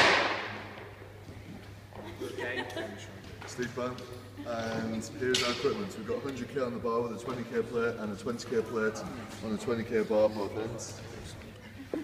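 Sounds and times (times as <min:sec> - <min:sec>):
loud bang echoing in hall: 0:00.0 - 0:01.2.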